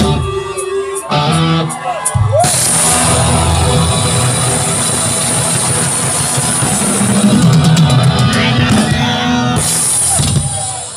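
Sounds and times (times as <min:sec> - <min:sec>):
live rock band music: 0:00.0 - 0:10.9
rock drums: 0:00.0 - 0:10.9.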